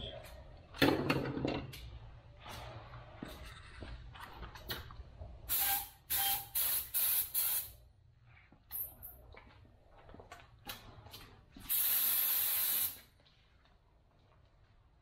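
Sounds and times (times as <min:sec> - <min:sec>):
spray gun hissing bursts: 0:05.5 - 0:07.8, 0:11.7 - 0:13.0.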